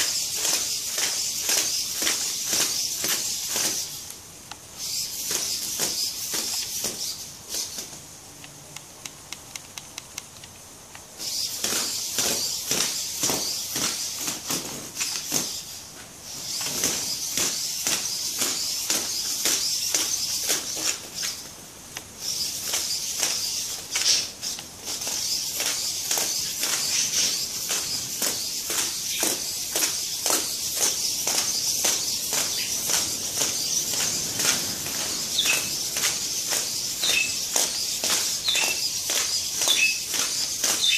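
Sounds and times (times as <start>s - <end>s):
plastic feet clicking on concrete: 0.0s - 40.9s.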